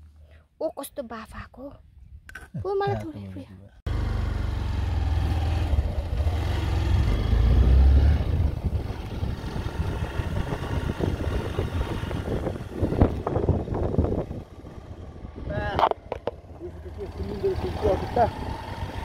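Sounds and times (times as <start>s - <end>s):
motorcycle running: 3.9s - 19.0s
wind rumbling on microphone: 5.2s - 19.0s.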